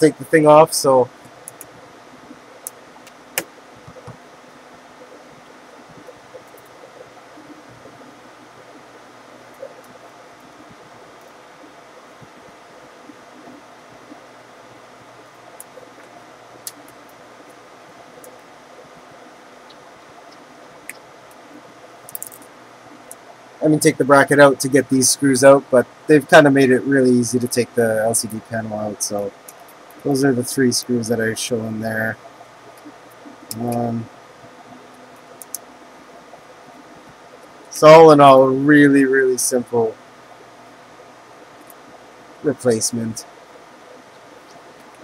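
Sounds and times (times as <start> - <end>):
steady low hiss: 0.0 - 45.0.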